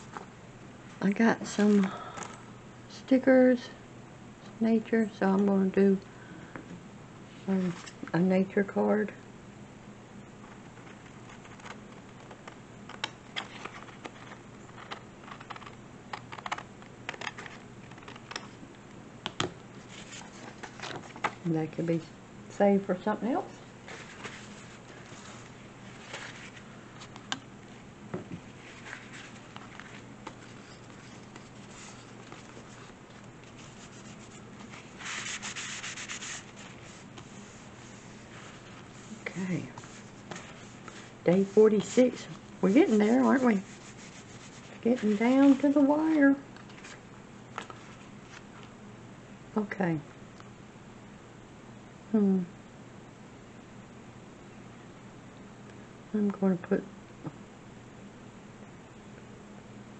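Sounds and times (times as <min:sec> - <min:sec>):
paper rustling: 0:10.5 - 0:18.4, 0:19.8 - 0:21.4, 0:23.8 - 0:27.8, 0:28.4 - 0:48.7.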